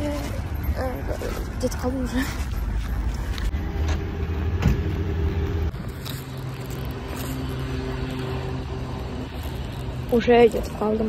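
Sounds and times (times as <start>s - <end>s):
motor vehicle engine rumble: 0.0s - 11.0s.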